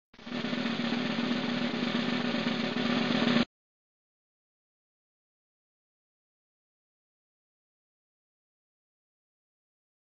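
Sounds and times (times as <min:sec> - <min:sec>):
snare drum roll: 0:00.2 - 0:03.5.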